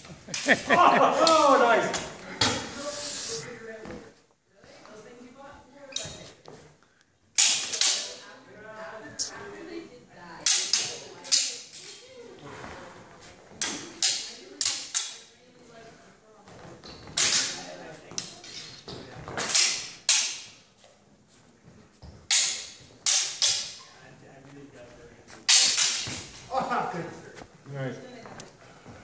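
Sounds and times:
swords clashing: 7.4s - 8.2s, 10.4s - 12.0s, 13.6s - 15.3s, 17.2s - 18.8s, 19.4s - 20.6s, 22.3s - 23.8s, 25.5s - 26.4s.

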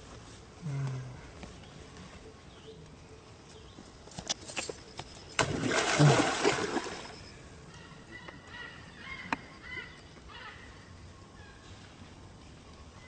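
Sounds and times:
monkey splashing in water: 5.4s - 7.2s.

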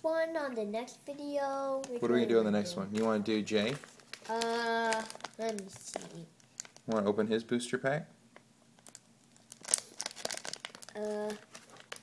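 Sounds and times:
plastic bag crinkling: 1.8s - 7.1s, 8.8s - 12.0s.

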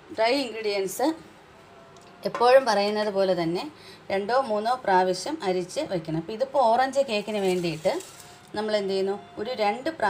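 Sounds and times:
woman speaking: 0.1s - 1.2s, 2.2s - 10.0s.

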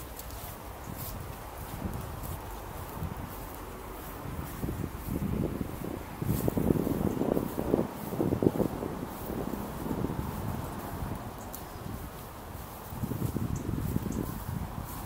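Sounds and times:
footsteps on grass: 0.0s - 15.0s
wind buffeting microphone: 0.0s - 15.0s.

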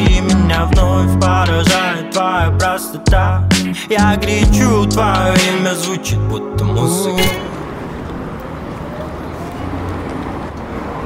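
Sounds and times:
low traffic rumble: 6.6s - 11.0s.

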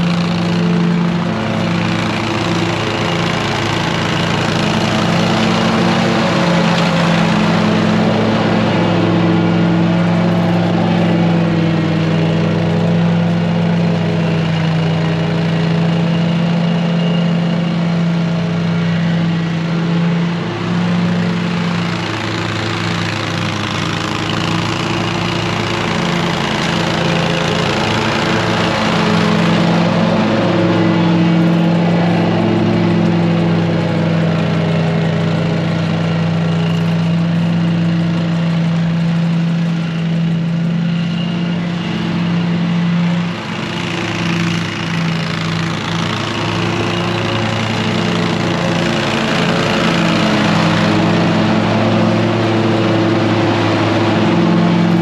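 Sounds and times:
mower engine running: 0.0s - 55.0s.

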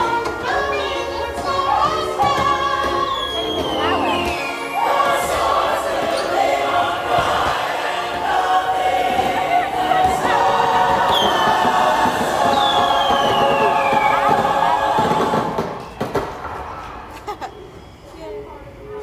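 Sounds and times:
chorus of voices singing: 0.0s - 15.9s
music: 0.0s - 15.9s.

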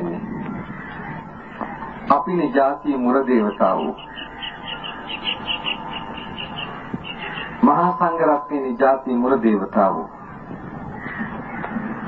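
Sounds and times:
faint steady tone: 0.0s - 12.0s
faint high chirp: 3.5s - 7.7s.

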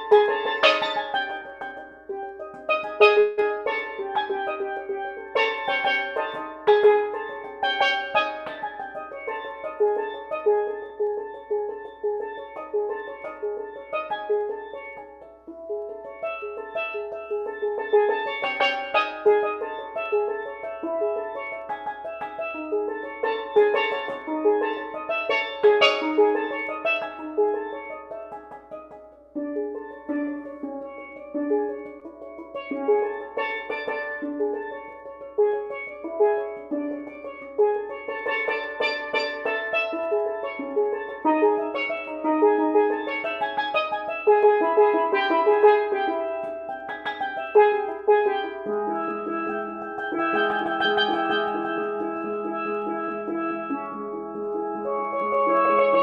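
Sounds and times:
steel pans played with mallets: 0.0s - 56.0s.

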